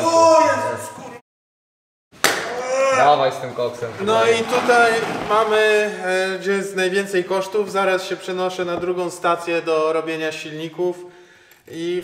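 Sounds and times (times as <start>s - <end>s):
voices: 2.4s - 11.0s
man's voice: 3.0s - 11.1s, 11.7s - 12.0s.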